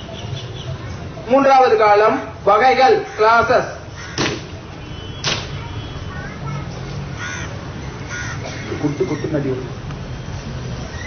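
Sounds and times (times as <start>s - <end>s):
crows cawing: 2.9s - 4.5s, 6.1s - 6.5s, 7.1s - 9.5s.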